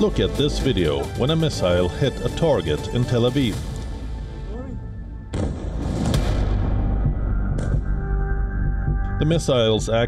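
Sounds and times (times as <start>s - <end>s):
background music: 0.0s - 10.0s
explosion with rumble: 5.3s - 7.1s
sharp blast: 5.3s - 7.8s.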